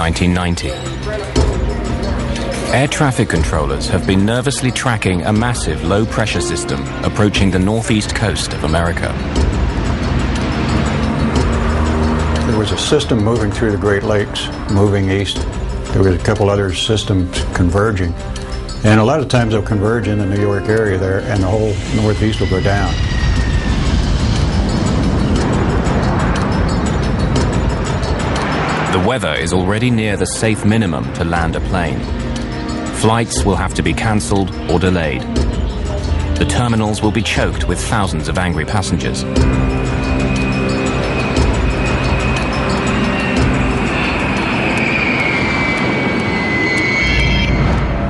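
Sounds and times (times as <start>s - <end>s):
background music: 0.0s - 48.0s
jet engines running: 0.0s - 48.0s
jet airliner passing overhead: 20.3s - 33.0s, 39.6s - 48.0s.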